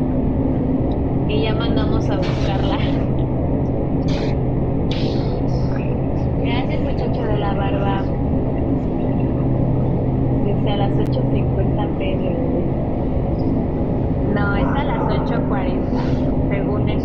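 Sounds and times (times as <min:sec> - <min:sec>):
low hum and rumble: 0:00.0 - 0:17.0
woman speaking: 0:01.3 - 0:03.2, 0:05.7 - 0:09.4, 0:10.4 - 0:12.6, 0:14.2 - 0:17.0.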